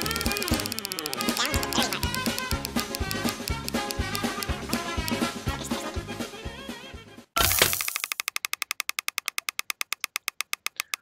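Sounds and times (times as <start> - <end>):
rapid ticking of prize reel: 0.0 - 5.2, 7.7 - 11.0.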